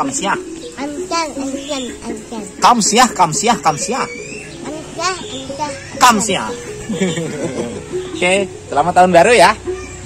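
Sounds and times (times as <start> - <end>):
child talking: 0.6 - 3.2, 4.5 - 8.1, 9.6 - 10.0.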